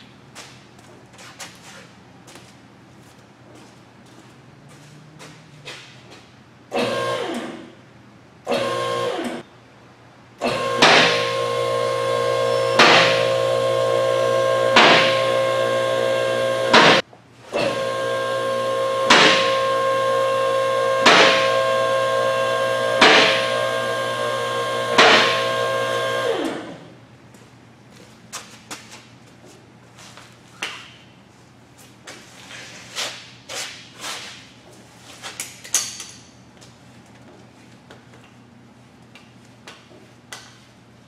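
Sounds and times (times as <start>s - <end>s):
hydraulic pump motor whining: 8.5s - 9.4s, 10.4s - 26.9s.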